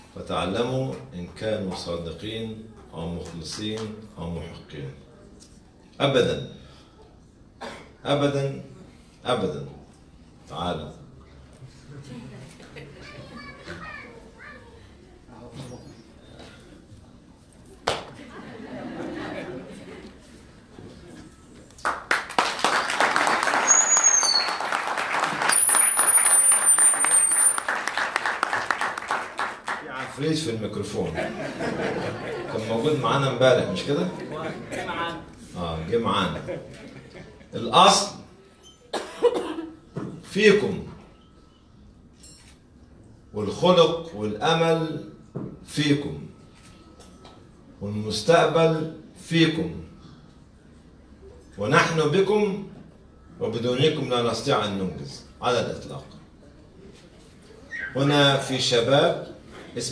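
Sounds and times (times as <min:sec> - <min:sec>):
person coughing: 0:07.6 - 0:08.0, 0:38.9 - 0:39.8
children chattering and calling: 0:12.2 - 0:16.2.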